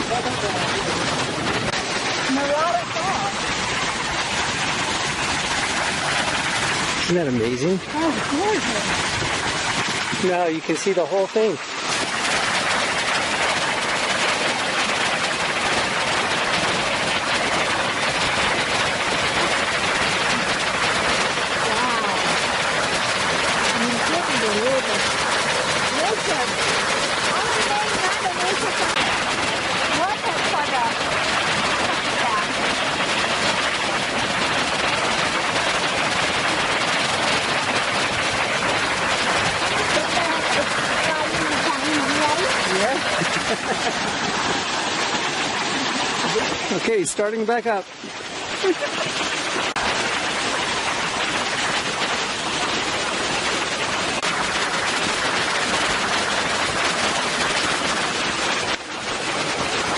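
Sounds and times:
waterfall rushing: 0.0 - 59.9.

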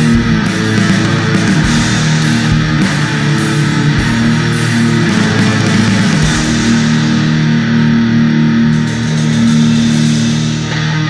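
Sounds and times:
electric guitars holding low notes: 0.0 - 11.0.

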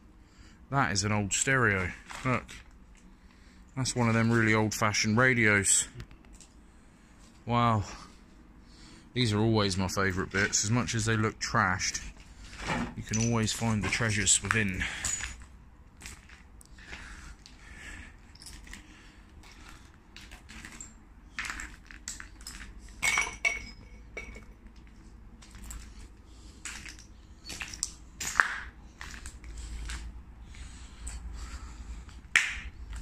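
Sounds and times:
metal clink with ring: 23.0 - 24.5.

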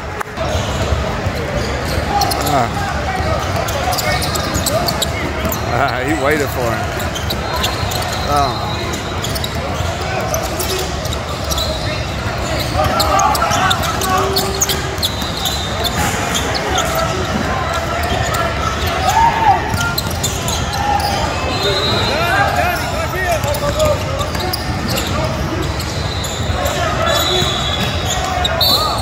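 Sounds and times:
sneakers squeaking: 0.4 - 29.0
basketball bouncing on court: 8.9 - 21.2, 23.4 - 26.8.

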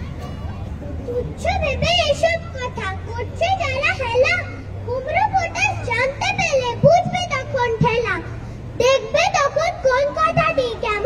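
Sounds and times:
children reciting verse: 0.0 - 11.0.

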